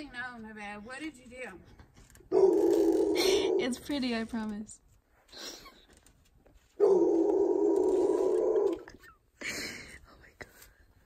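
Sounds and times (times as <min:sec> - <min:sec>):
breathy sounds: 0:02.3 - 0:03.7.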